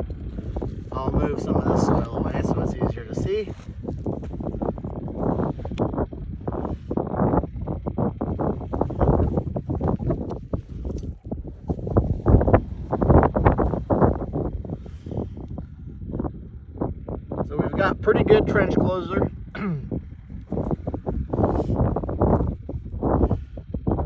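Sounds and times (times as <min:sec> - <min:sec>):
wind buffeting microphone: 0:00.0 - 0:24.0.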